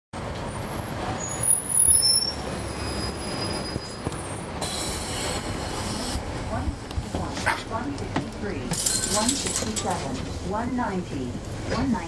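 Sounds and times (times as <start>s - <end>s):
road noise: 0.1s - 12.0s
bus diesel engine running: 2.4s - 12.0s.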